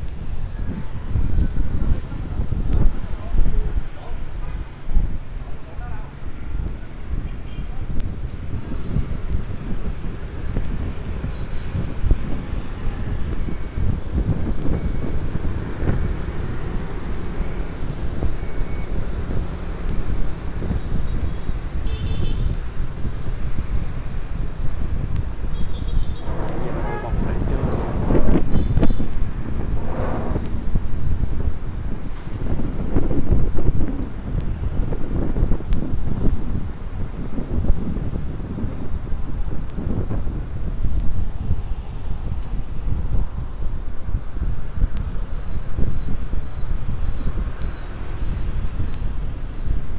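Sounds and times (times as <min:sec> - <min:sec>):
wind buffeting microphone: 0:00.0 - 0:49.9
motorbikes and cars passing: 0:08.6 - 0:21.8, 0:22.7 - 0:34.1
horn toots: 0:25.5 - 0:29.1.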